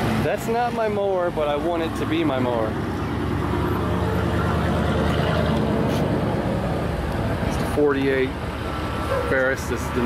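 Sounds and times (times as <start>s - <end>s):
vehicle engine running: 0.1s - 10.0s.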